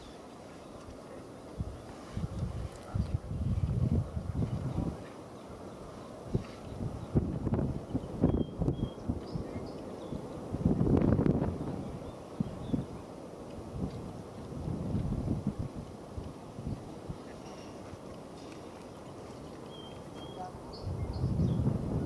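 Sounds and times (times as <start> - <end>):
wind buffeting microphone: 1.5 - 22.0.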